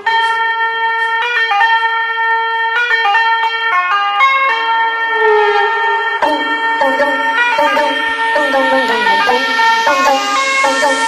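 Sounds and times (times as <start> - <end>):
dance music lead melody: 5.6 - 11.0.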